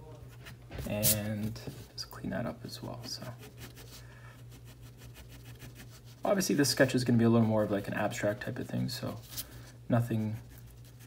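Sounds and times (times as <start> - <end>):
low steady hum: 0.0 - 11.0
pencil scratching on paper: 3.2 - 9.2.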